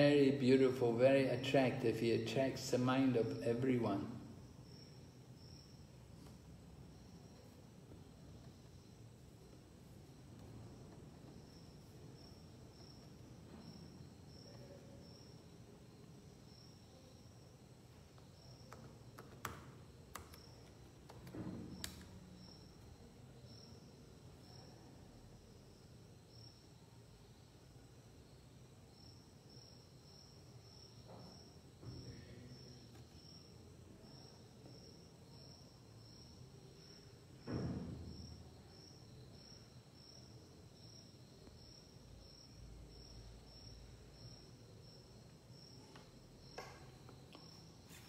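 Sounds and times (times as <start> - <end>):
thump: 21.3 - 21.8, 37.4 - 38.4.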